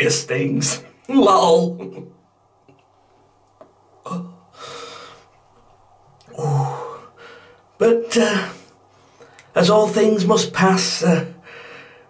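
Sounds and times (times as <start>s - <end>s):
breathy gasp: 4.5s - 5.3s, 11.4s - 12.0s.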